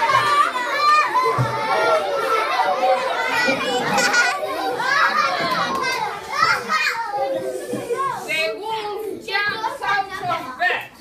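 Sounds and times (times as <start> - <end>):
crowd of children chattering: 0.0 - 11.0.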